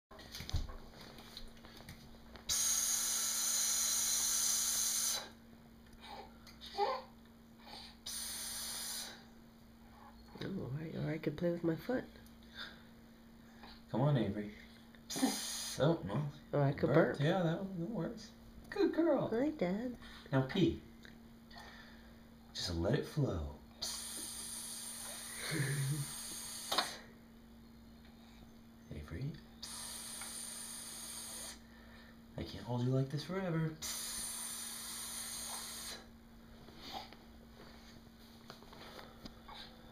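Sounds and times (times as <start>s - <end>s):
person making a drawn-out hiss: 2.5s - 5.4s, 7.7s - 9.3s, 15.1s - 16.0s, 23.8s - 27.1s, 29.6s - 31.7s, 33.8s - 36.1s.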